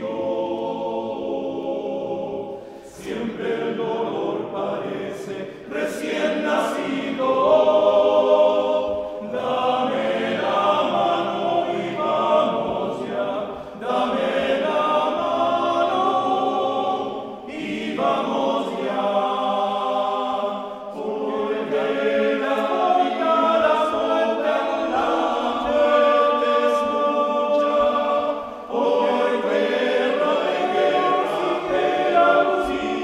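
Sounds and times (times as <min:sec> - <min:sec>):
male choir singing: 0:00.0 - 0:33.0.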